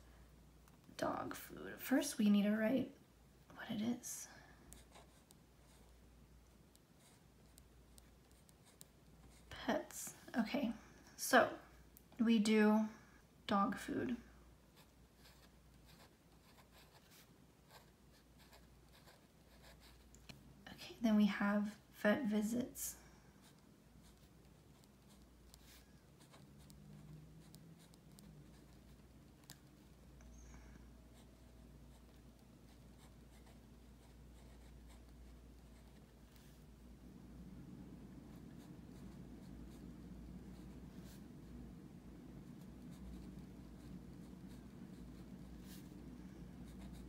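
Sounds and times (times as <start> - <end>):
low room hum: 0.0 - 47.0
pen scratching on paper: 4.7 - 5.9, 7.0 - 9.5, 14.8 - 20.1, 23.4 - 30.0, 31.1 - 36.1, 42.5 - 46.0, 46.7 - 47.0
felt-tip pen scratching on paper: 23.4 - 29.9.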